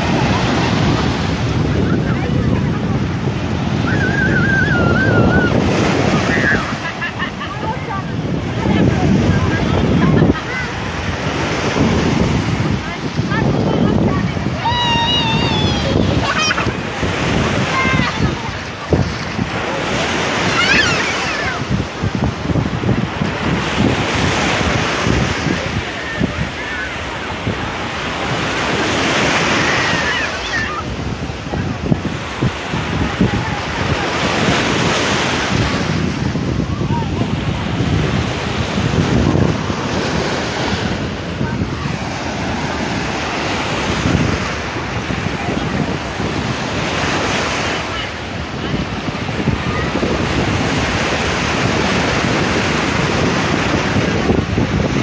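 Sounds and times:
surf breaking on sand: 0:00.0 - 0:55.0
wind buffeting microphone: 0:00.0 - 0:55.0.

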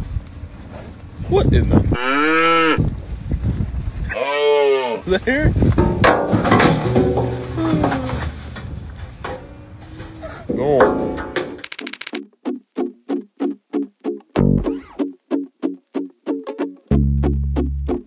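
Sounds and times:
cattle mooing: 0:02.0 - 0:02.8, 0:04.1 - 0:05.0
plucked guitar jingle: 0:12.4 - 0:18.0.

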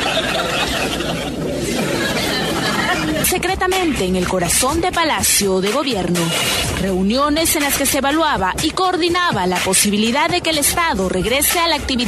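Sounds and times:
indistinct chatter: 0:00.0 - 0:04.3.

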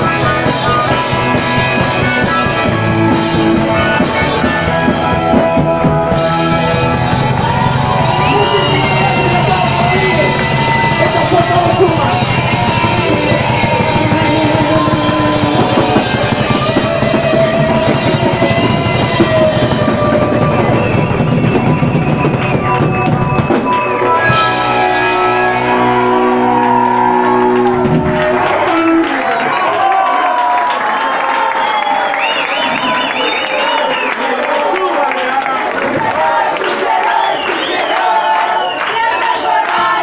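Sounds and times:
live rock band playing: 0:00.0 - 0:30.6
crowd shouting and cheering: 0:00.0 - 0:40.0.

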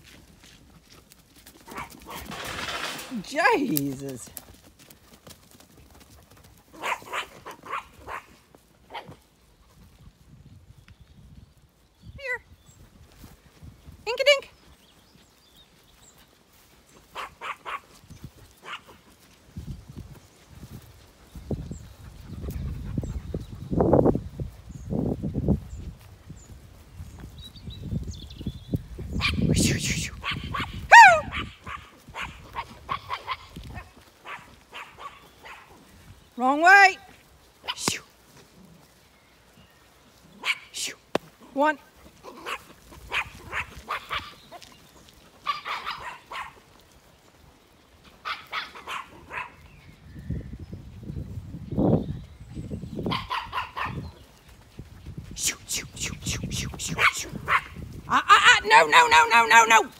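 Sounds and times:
dog barking: 0:01.7 - 0:02.3, 0:06.7 - 0:09.2, 0:17.1 - 0:17.9, 0:18.6 - 0:19.0, 0:30.2 - 0:35.8, 0:40.4 - 0:40.8, 0:42.3 - 0:44.4, 0:45.4 - 0:46.6, 0:48.2 - 0:49.6, 0:53.1 - 0:54.0, 0:57.0 - 0:57.8
dog high call: 0:30.2 - 0:33.6, 0:45.4 - 0:46.6.

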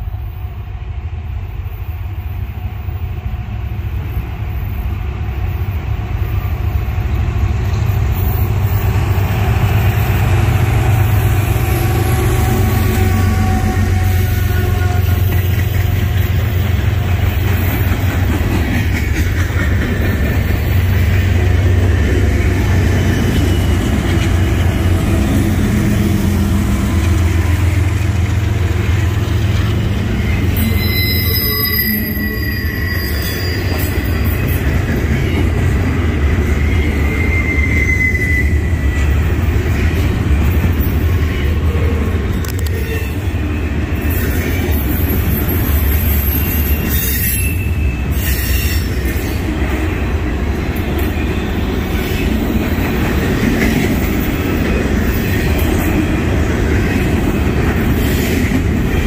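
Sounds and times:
freight train rumbling past: 0:00.0 - 0:59.0
high wheel squeal: 0:23.0 - 0:24.6, 0:29.6 - 0:35.6, 0:36.4 - 0:39.3, 0:42.6 - 0:49.5.

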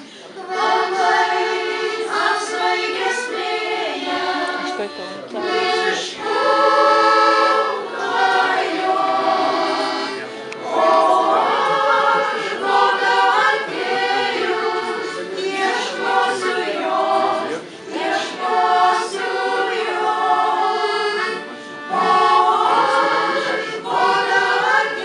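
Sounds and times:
women singing in harmony: 0:00.4 - 0:25.0.

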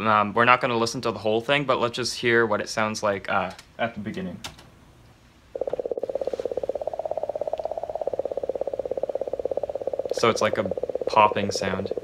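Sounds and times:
rapid popping pulses: 0:05.5 - 0:12.0.

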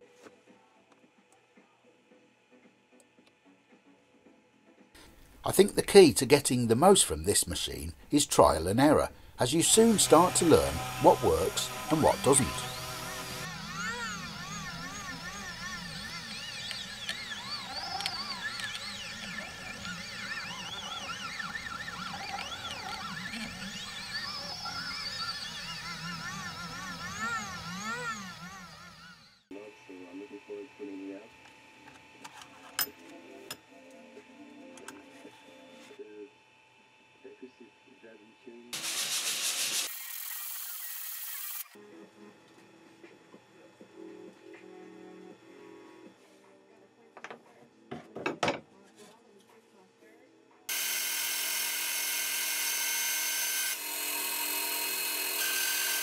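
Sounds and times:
faint background music: 0:00.0 - 0:12.8, 0:29.5 - 0:38.8, 0:41.8 - 0:50.7
stepper motors whining: 0:07.6 - 0:29.6, 0:39.8 - 0:41.8, 0:50.7 - 0:56.0
cnc router spindle running: 0:09.4 - 0:32.2, 0:50.7 - 0:56.0.

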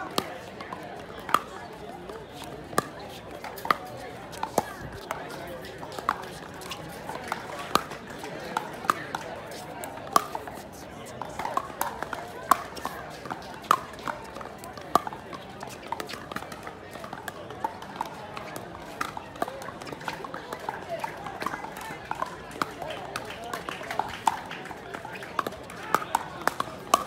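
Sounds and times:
murmur of voices: 0:00.0 - 0:27.0.

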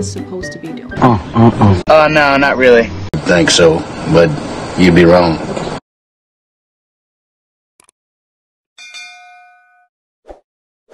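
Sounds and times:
bell chime ding: 0:08.8 - 0:09.9.

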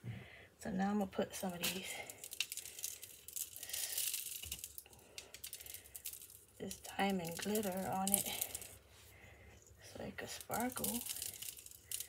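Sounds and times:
sprinkles clicking and rattling: 0:01.4 - 0:08.8, 0:09.6 - 0:12.0
sprinkles falling onto foam tray: 0:01.4 - 0:08.8, 0:10.1 - 0:12.0.

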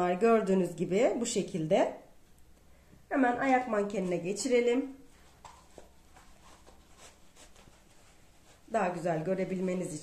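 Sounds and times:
soft handling ticks and rustles: 0:03.8 - 0:10.0.

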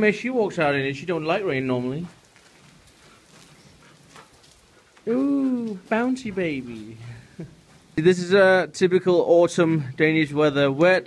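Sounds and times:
light rain pattering: 0:00.0 - 0:11.0.

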